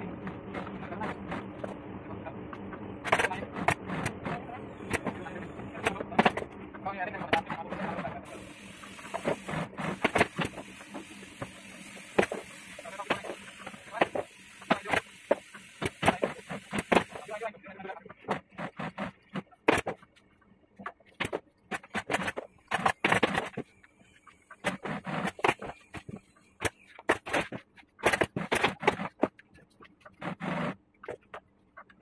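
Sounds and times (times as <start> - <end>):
low motor hum: 0.0 - 17.4
steady hiss: 8.3 - 17.5.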